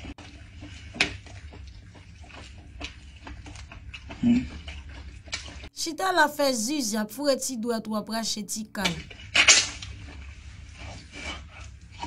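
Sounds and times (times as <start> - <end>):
meat tearing: 0.6 - 5.6.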